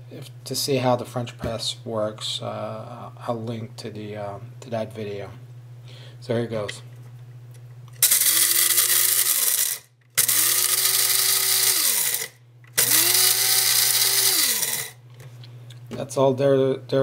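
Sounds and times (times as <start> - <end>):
blade grinder grinding coffee beans: 7.9 - 15.0.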